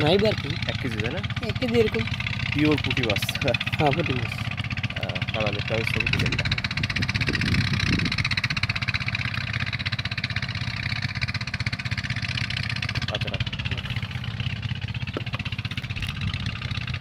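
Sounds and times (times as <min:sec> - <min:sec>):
boat engine running: 0:00.0 - 0:17.0.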